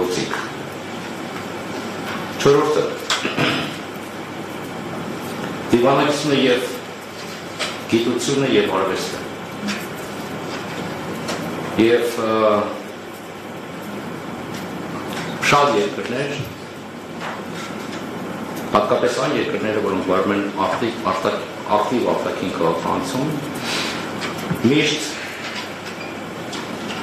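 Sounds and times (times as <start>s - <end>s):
room noise hiss: 0.0s - 27.0s.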